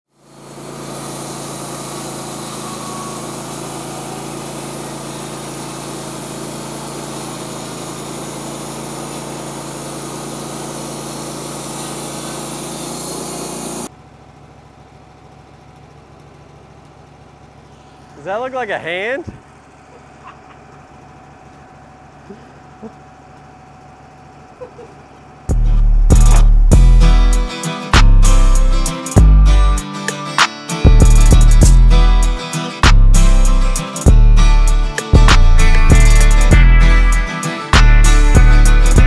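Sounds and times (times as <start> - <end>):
band saw cutting log: 0.1 - 13.9, 25.5 - 39.0
quiet engine hum: 13.9 - 26.7.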